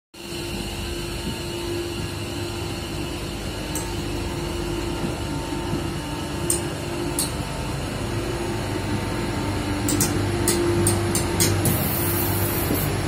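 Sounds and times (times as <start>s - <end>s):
railcar rolling on track: 0.2s - 13.0s.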